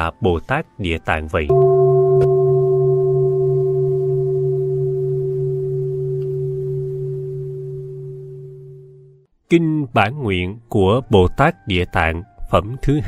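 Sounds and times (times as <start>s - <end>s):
bell ringing with low hum: 1.5s - 9.2s.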